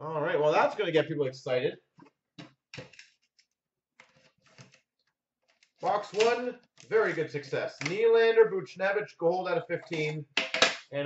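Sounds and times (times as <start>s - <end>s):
cardboard box on glass counter: 2.8s - 8.2s
hands handling trading cards: 5.5s - 8.0s.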